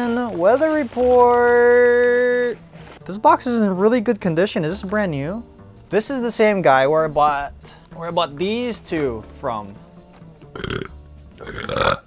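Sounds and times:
faint background music: 0:00.0 - 0:12.0
man burping: 0:10.5 - 0:12.0.

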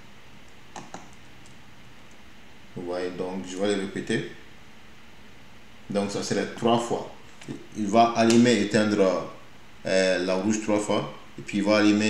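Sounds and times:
low room noise: 0:00.0 - 0:12.0.

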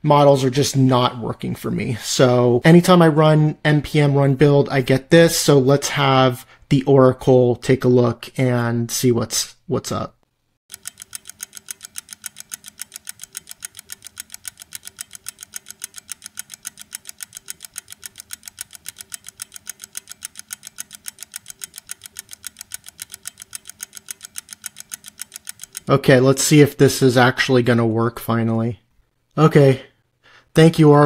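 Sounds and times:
rapid timer ticking: 0:10.7 - 0:26.3.

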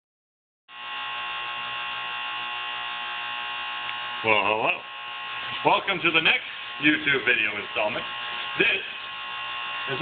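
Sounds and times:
steady buzzing hum: 0:00.7 - 0:10.0.

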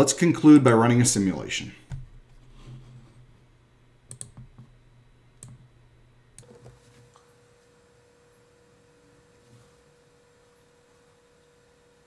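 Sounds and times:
faint low hum: 0:00.0 - 0:12.0
computer mouse clicks: 0:04.1 - 0:04.7, 0:05.4 - 0:05.7.

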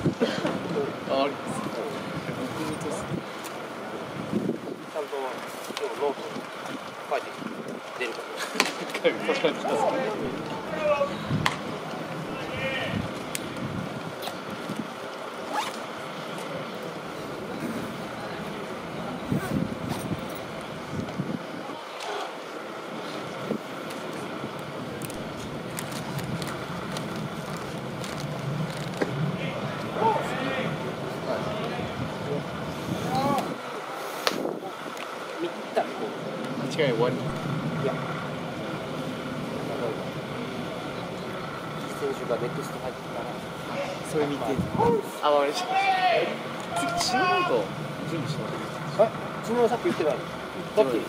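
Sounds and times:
spectators chatting: 0:00.0 - 0:51.0
steady rush of background noise: 0:00.0 - 0:51.0.

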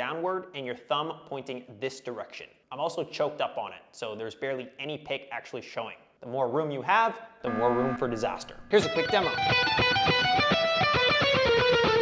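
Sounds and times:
electric guitar picked notes: 0:07.5 - 0:12.0.

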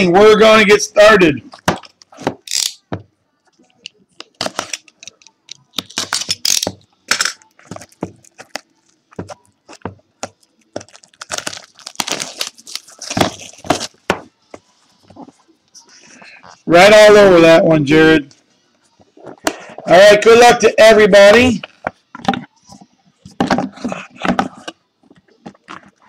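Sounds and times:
plastic wrapping torn and crinkled: 0:07.3 - 0:09.0, 0:10.4 - 0:14.1.

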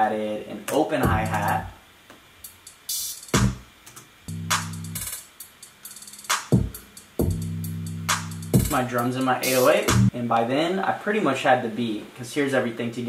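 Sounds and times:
held bass notes: 0:01.0 - 0:01.7, 0:04.3 - 0:05.0, 0:07.2 - 0:08.8
hi-hats: 0:01.0 - 0:01.7, 0:02.4 - 0:10.1.

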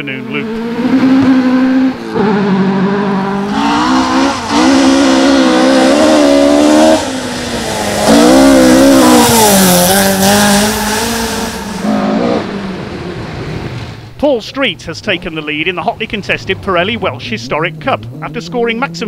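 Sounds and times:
rally car engine revving: 0:00.0 - 0:14.0, 0:15.1 - 0:19.0.

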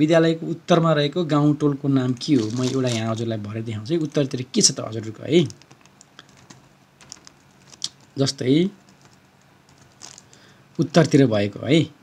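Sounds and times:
typing on computer keyboard: 0:05.5 - 0:08.2, 0:08.8 - 0:10.3.

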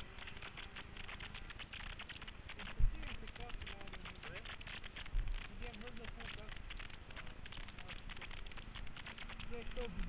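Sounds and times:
faint voices: 0:00.0 - 0:10.0
microphone crackle: 0:00.0 - 0:10.0.

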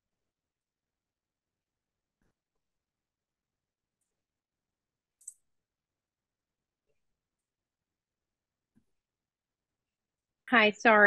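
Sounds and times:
sharp click: 0:05.2 - 0:05.4.

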